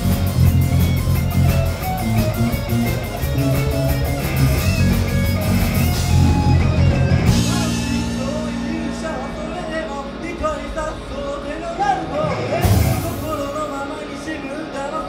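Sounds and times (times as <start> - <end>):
bass guitar: 0.0 - 15.0
electric guitars: 0.0 - 15.0.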